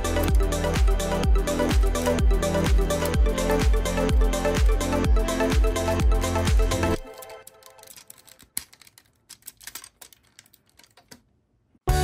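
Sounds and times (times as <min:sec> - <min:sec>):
music: 0:00.0 - 0:08.1
plastic toy parts clicking: 0:07.0 - 0:11.3.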